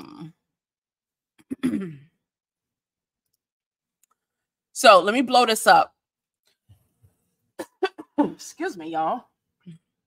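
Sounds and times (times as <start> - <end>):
woman clearing her throat: 1.4 - 2.2, 7.6 - 8.4.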